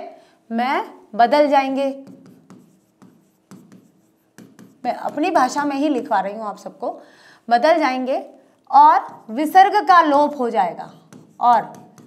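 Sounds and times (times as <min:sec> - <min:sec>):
chalk scratching on blackboard: 0:01.9 - 0:06.1, 0:08.9 - 0:09.9, 0:10.7 - 0:12.0.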